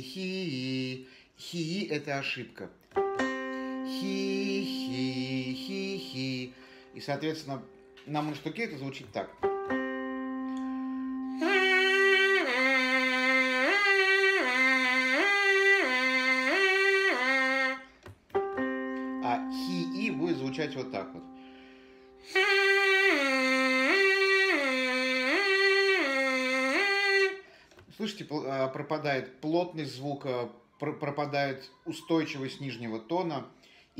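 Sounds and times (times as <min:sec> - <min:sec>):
keyboard reference notes: 0:02.8 - 0:26.8.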